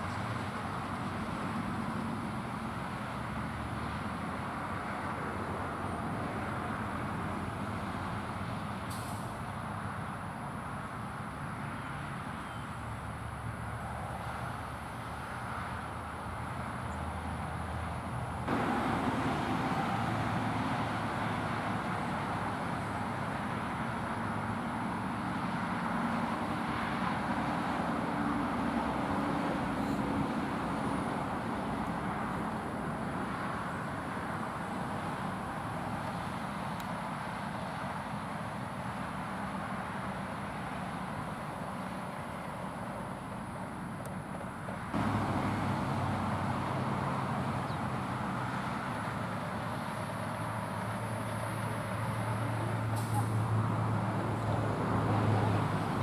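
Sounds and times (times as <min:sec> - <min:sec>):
truck engine running: 0:18.4 - 0:26.6, 0:45.0 - 0:56.0.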